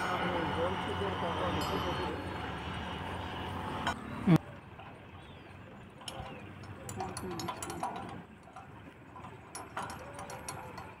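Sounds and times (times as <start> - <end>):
metallic clicking and rattling: 6.0 - 11.0.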